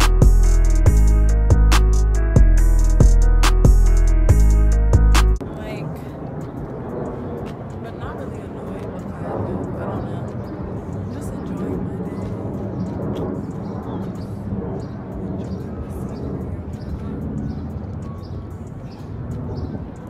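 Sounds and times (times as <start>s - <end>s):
intro music with drums: 0.0s - 5.4s
woman speaking quietly: 5.4s - 6.5s, 7.7s - 12.7s, 15.3s - 17.2s
wind rumble on microphone: 5.4s - 20.0s.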